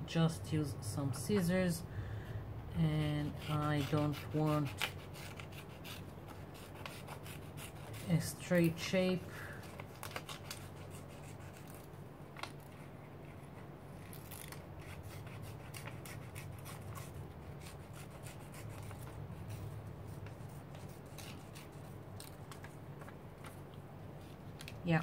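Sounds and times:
scissors cutting paper: 0:02.9 - 0:23.6.

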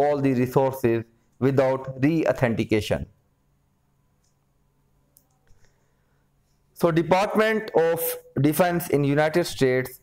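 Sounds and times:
computer mouse clicks: 0:04.2 - 0:04.4.

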